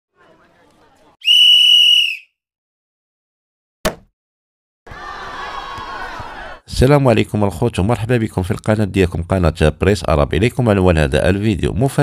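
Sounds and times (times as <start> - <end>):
referee's whistle blast: 1.2 - 2.3.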